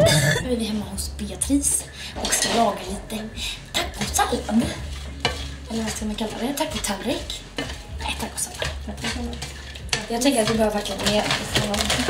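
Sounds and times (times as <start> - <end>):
kitchen utensils clinking: 1.8 - 12.0
spatula scraping a frying pan: 1.8 - 12.0.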